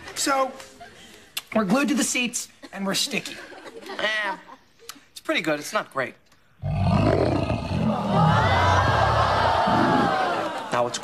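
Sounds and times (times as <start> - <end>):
bear roaring: 6.6 - 10.5.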